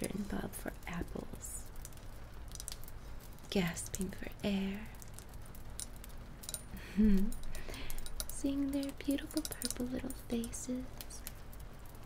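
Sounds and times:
faint clicks: 1.6s - 4.0s, 4.9s - 12.0s
woman humming or laughing softly: 6.8s - 7.4s.

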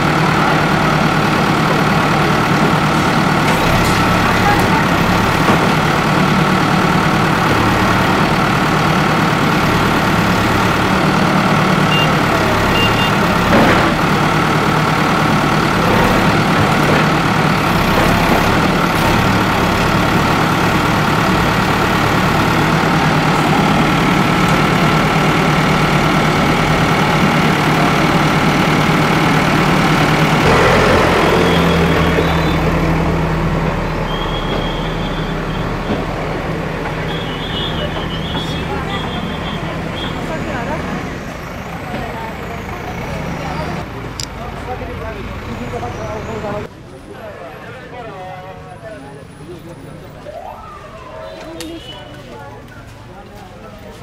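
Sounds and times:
diesel engine running: 0.0s - 47.0s.

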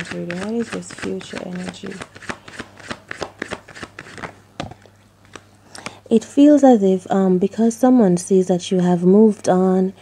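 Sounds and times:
cards being shuffled: 0.0s - 6.0s.

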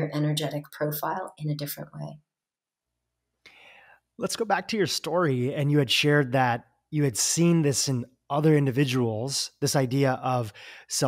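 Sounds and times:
person breathing in: 3.5s - 4.1s, 10.5s - 10.9s
spoken word: 4.2s - 11.0s.

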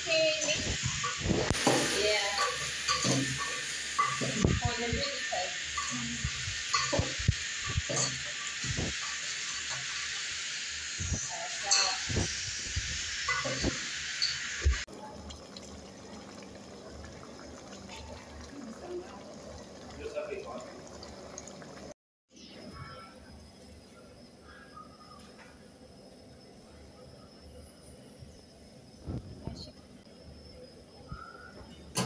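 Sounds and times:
cooking pot hissing: 0.0s - 22.8s.

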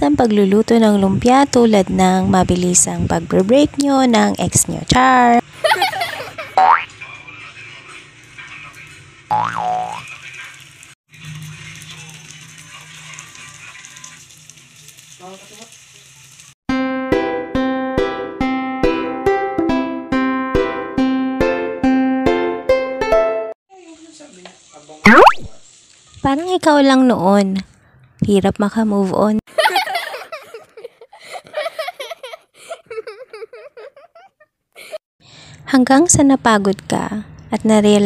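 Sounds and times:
food frying in oil: 5.4s - 16.6s, 23.7s - 27.6s
cartoon boing sound effect: 6.6s - 6.9s, 9.3s - 10.0s, 25.1s - 25.6s.

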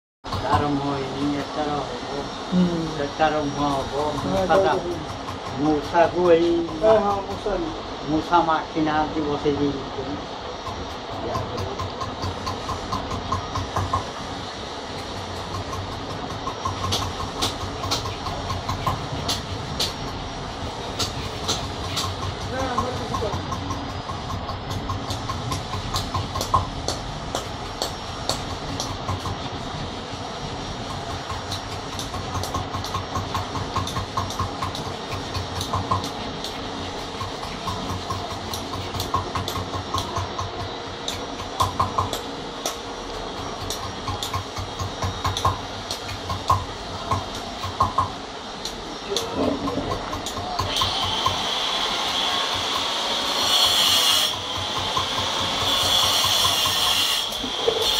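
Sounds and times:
steady mechanical hum: 0.2s - 57.9s
tool tapping stone: 15.4s - 20.0s, 21.0s - 29.4s, 30.9s - 42.8s, 43.4s - 51.5s, 54.3s - 57.9s.

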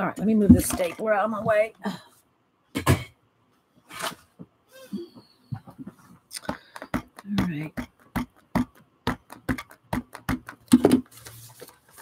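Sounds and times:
rubber stamp tapping ink pad: 6.4s - 11.0s.

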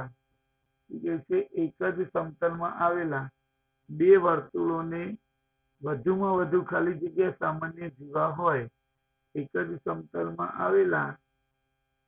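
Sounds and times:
man talking: 0.9s - 3.3s, 3.9s - 5.2s, 5.8s - 8.7s, 9.4s - 11.2s.

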